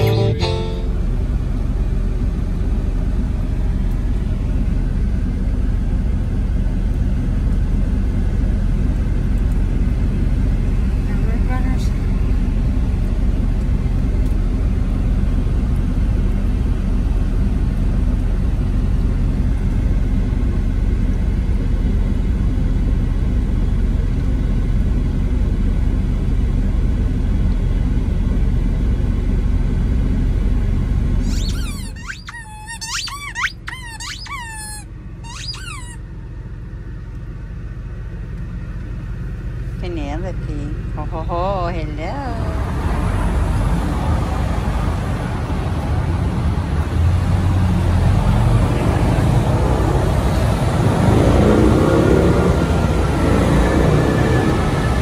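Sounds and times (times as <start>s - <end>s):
truck engine rumble inside cab: 0.0s - 55.0s
squeaky dog toy: 31.2s - 36.1s.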